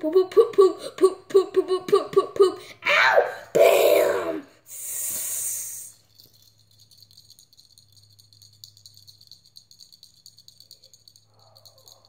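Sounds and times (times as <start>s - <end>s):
small hard objects rattling: 5.9s - 12.0s.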